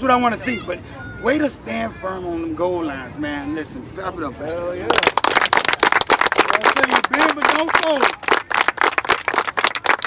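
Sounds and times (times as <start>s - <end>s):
people clapping: 4.8s - 10.0s.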